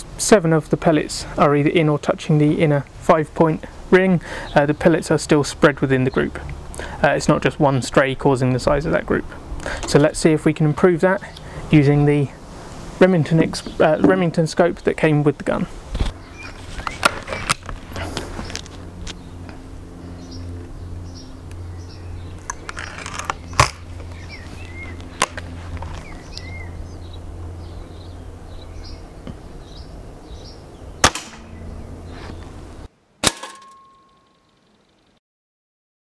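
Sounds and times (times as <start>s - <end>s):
air rifle handling clicks: 22.4s - 26.5s
air rifle shot: 31.0s - 31.6s
pellet striking target with ring: 33.2s - 34.3s.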